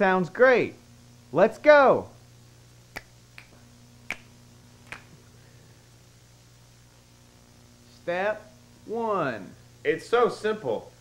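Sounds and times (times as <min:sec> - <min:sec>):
faint low hum: 0:00.0 - 0:11.0
finger snaps: 0:02.9 - 0:05.2.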